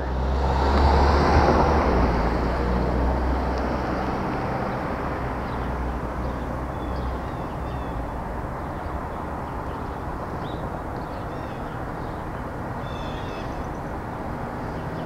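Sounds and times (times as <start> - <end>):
vehicle passing: 0.0 - 15.0.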